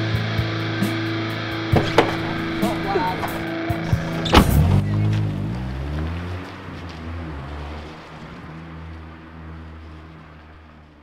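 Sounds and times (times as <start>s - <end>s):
car engine revving: 1.7s - 11.0s
sharp knock: 1.8s - 3.4s.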